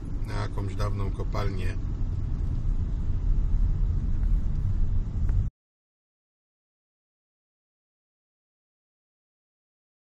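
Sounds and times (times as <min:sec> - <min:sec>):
car engine and road noise: 0:00.0 - 0:05.5.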